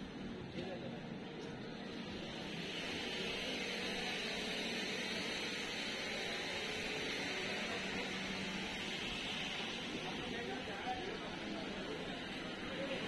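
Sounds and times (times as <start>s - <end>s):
low background murmur: 0.0s - 13.0s.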